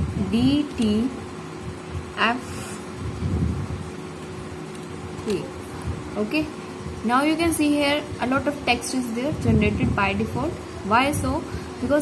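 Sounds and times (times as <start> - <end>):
background hum: 0.0 - 12.0.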